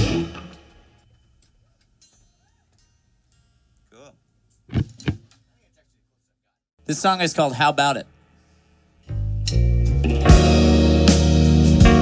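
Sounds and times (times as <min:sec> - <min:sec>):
rock band final chord: 0:00.0 - 0:00.8, 0:10.0 - 0:12.0.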